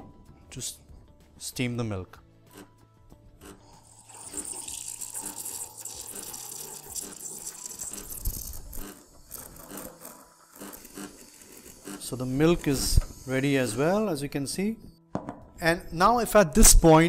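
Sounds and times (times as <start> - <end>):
milk foam crackling and rattling: 3.5 - 12.9
steam wand hissing: 3.5 - 14.0.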